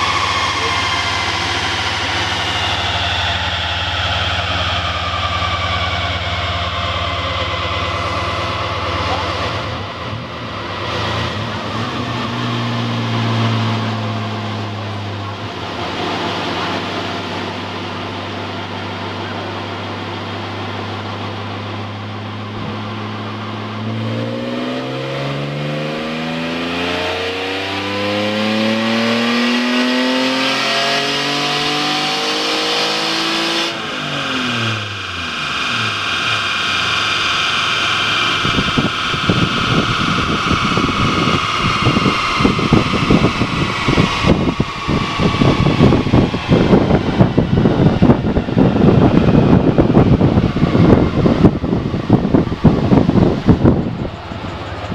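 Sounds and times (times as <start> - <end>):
car engine revving on a dynamometer: 0.0 - 54.9
loud rough rushing noise: 0.0 - 54.9.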